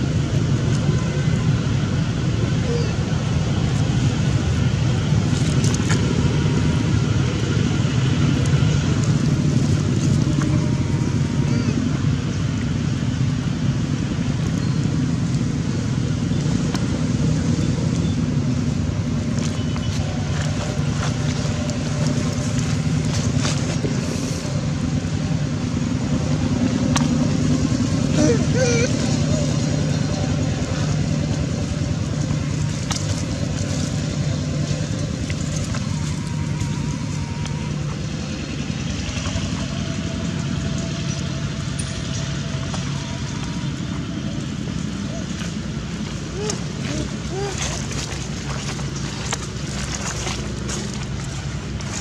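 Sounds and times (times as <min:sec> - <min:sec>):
low motor drone: 0:00.0 - 0:52.0.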